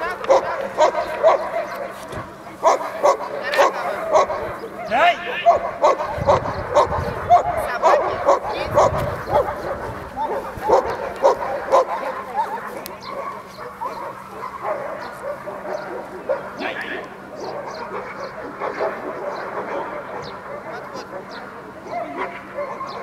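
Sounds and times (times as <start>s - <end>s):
dog barking and yelping: 0.1s - 2.0s, 2.6s - 23.0s.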